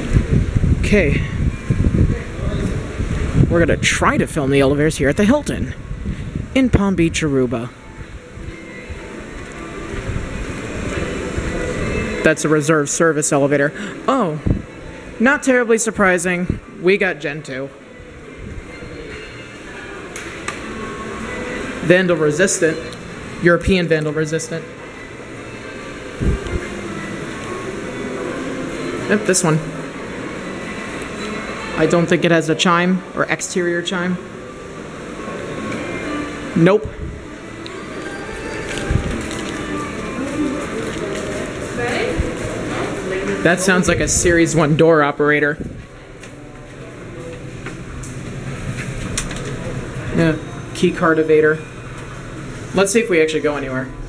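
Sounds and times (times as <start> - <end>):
low lobby hum: 0.0 - 54.0.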